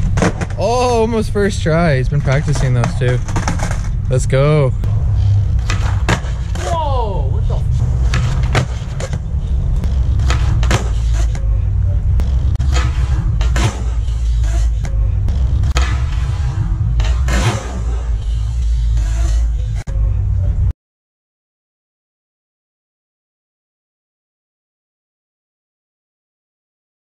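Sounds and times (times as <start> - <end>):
skateboard clacks: 0.0 - 0.6, 2.2 - 4.0, 5.6 - 6.8, 7.9 - 11.5
skateboard wheels rolling on concrete: 0.0 - 20.7.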